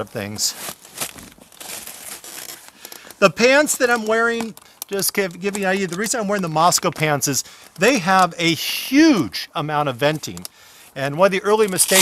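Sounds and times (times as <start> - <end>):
fabric rustling and crinkling: 0.2 - 8.2.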